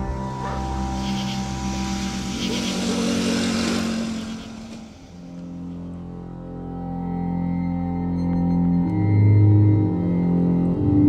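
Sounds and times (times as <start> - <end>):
motor vehicle passing: 0.0 - 6.6
ambient music drone: 0.0 - 11.0.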